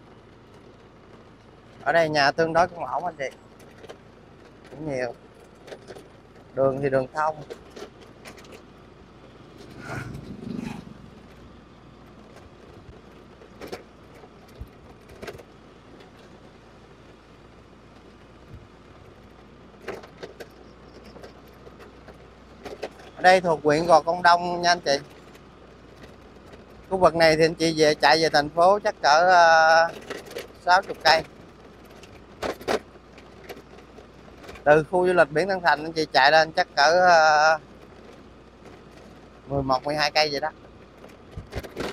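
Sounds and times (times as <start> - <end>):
light rattles and clicks: 0.0 - 41.9
motorbike engine hum: 0.0 - 41.9
motorbike passing: 0.0 - 41.9.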